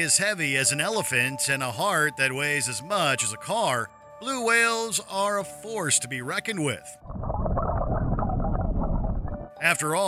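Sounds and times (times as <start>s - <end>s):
low underwater rush: 7.0s - 9.6s.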